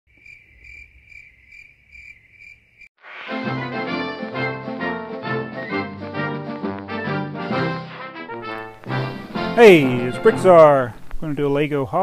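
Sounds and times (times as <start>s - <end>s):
cricket-like chirping trill: 0.1s - 2.9s
music: 3.0s - 11.0s.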